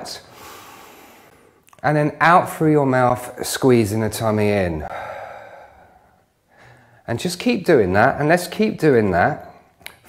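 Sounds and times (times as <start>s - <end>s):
man exhaling slowly: 4.8s - 7.0s.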